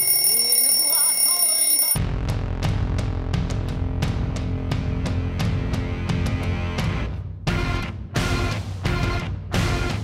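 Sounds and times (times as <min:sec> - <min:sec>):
alarm clock shrill electronic tone: 0:00.0 - 0:02.0.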